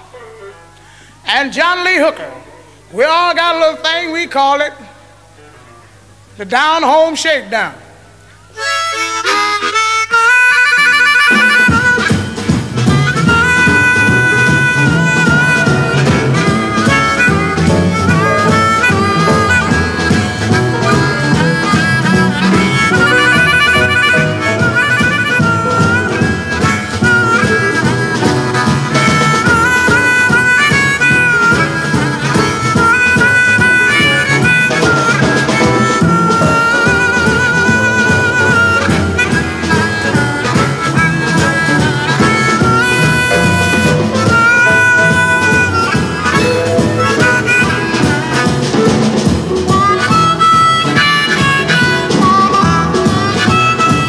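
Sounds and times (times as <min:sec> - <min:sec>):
blues harmonica: 0:00.0 - 0:01.2, 0:08.2 - 0:54.0
backing band: 0:05.4 - 0:54.0.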